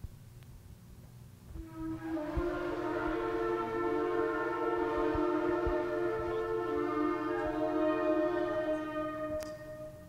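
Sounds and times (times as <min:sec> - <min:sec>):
higher-pitched horn: 0:01.6 - 0:10.0
shofars blowing: 0:01.6 - 0:10.0.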